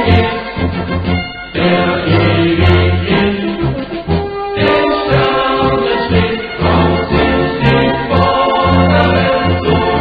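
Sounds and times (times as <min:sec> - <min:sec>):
choir singing a march: 0:00.0 - 0:10.0.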